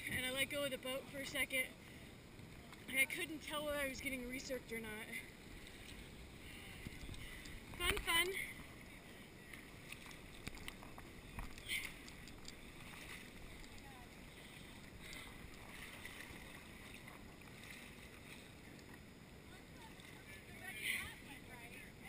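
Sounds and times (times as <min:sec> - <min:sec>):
distant group chatter: 0:00.0 - 0:22.0.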